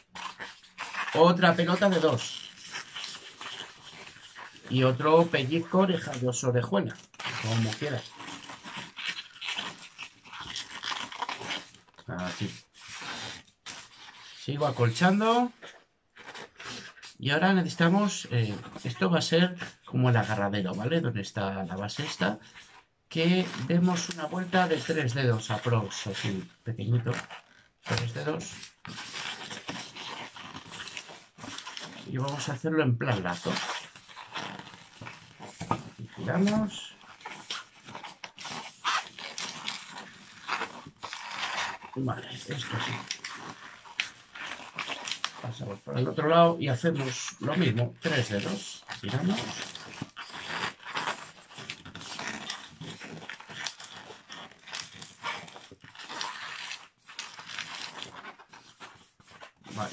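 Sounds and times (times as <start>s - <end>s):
balloon rubbing and scraping: 0.0s - 59.9s.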